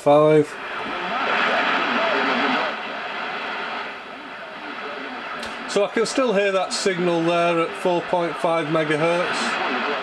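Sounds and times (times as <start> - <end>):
faint voice through static: 0.0 - 10.0
radio static hiss: 0.0 - 10.0.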